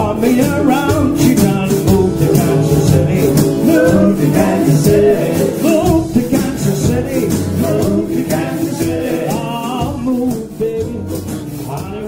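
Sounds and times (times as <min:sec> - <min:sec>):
jug bass: 0:00.0 - 0:12.0
strummed guitar: 0:00.0 - 0:12.0
washboard rhythm: 0:00.1 - 0:12.0.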